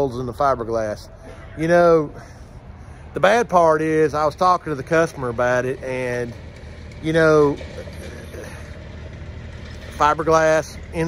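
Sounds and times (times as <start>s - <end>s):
engine humming: 0.0s - 11.0s
outdoor background noise: 0.0s - 11.0s.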